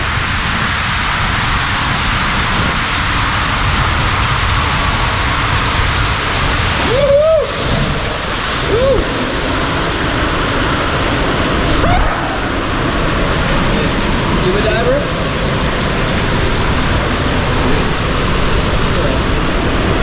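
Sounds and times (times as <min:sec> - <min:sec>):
water rushing down a flume: 0:00.0 - 0:20.0
rising and falling squeals: 0:06.7 - 0:20.0.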